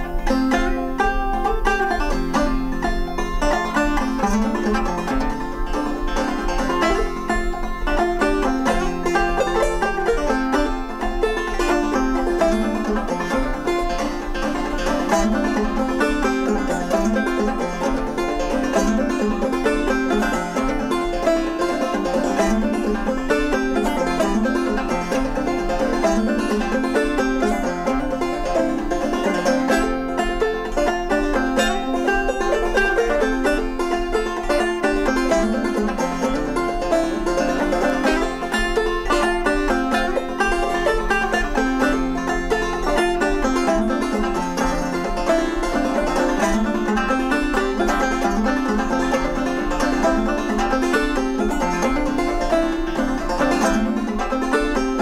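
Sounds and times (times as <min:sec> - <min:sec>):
banjos playing: 0:00.0 - 0:55.0.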